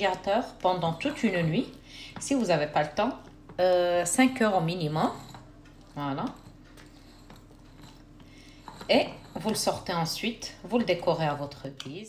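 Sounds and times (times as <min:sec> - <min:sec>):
spatula spreading thick filling: 0:04.4 - 0:10.0.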